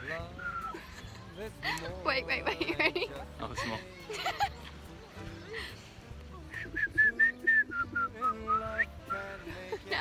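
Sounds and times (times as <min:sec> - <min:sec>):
person whistling a tune: 0:00.4 - 0:00.9, 0:06.5 - 0:09.4.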